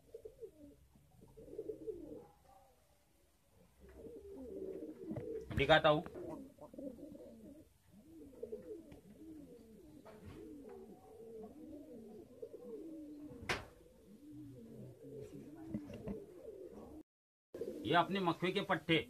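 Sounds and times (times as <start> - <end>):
pigeons cooing: 0.0 - 17.0, 17.6 - 19.0.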